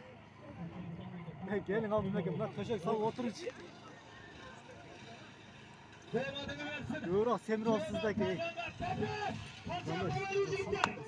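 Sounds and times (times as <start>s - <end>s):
men talking in crowd: 0.0s - 11.0s.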